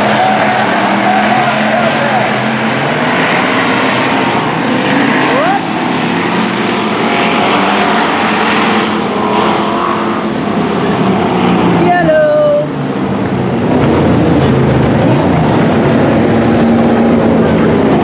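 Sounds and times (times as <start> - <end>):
engine revving: 0.0 - 18.0
race car engines droning: 0.0 - 18.0.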